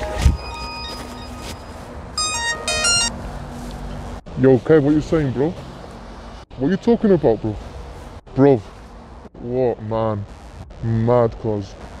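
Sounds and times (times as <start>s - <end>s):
held musical tones: 0.0s - 3.1s
mobile phone ringtone melody: 0.0s - 3.1s.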